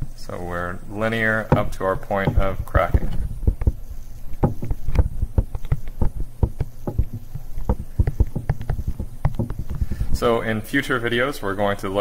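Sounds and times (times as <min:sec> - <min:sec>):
stylus tapping and scratching on tablet: 0:01.5 - 0:10.1.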